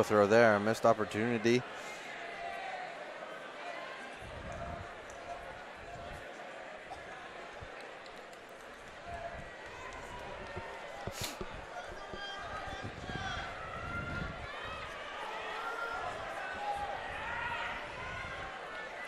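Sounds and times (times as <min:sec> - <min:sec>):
arena background noise: 0:00.0 - 0:19.0.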